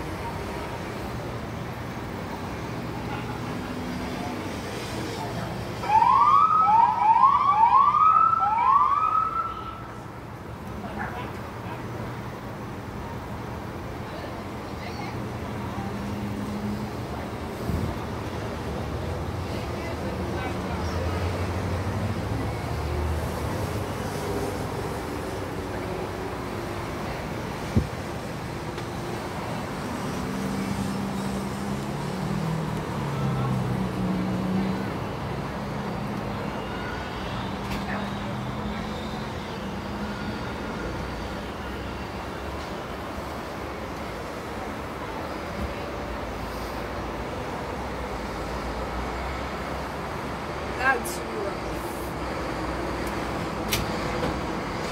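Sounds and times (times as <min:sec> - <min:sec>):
low traffic hum: 0:00.0 - 0:54.9
police siren whooping: 0:05.8 - 0:09.8.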